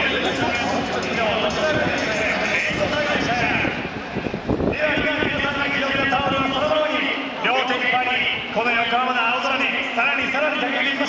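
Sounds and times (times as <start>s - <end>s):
indistinct stadium crowd voices: 0.0s - 11.0s.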